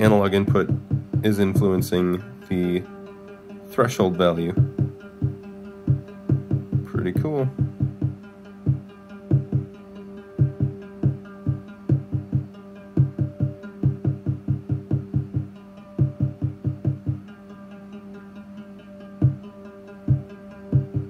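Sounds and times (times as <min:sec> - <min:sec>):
plucky synthesizer bass notes: 0:00.5 - 0:01.9, 0:04.5 - 0:09.8, 0:10.4 - 0:17.3, 0:19.2 - 0:21.0.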